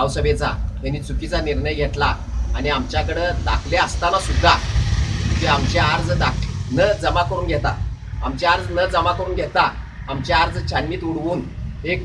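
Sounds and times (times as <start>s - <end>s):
man speaking: 0.0s - 4.7s, 5.3s - 12.0s
steady low rumble: 0.0s - 12.0s.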